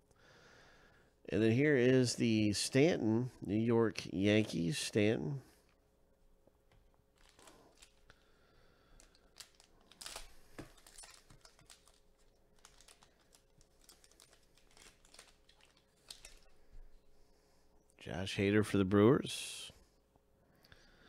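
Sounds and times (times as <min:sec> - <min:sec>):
foil wrapper crinkling: 0:07.1 - 0:16.6.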